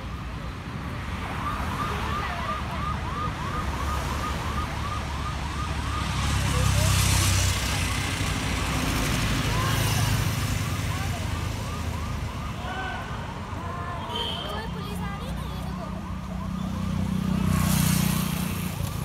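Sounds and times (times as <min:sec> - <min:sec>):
vehicles passing with road noise: 0:00.0 - 0:19.0
electronic siren yelping: 0:01.4 - 0:07.0, 0:14.8 - 0:18.0.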